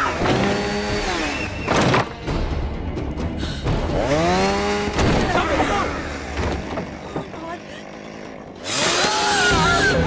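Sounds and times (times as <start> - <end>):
chainsaw engine revving: 0.0 - 1.6, 3.9 - 10.0.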